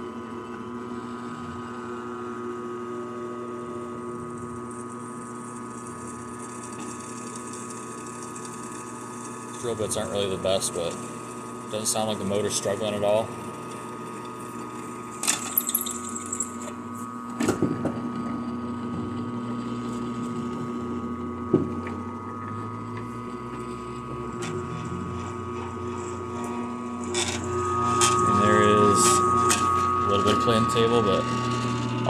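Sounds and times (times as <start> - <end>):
drill press motor hum and whine: 0.0 - 32.0
drill bit cutting metal squealing: 27.0 - 32.0.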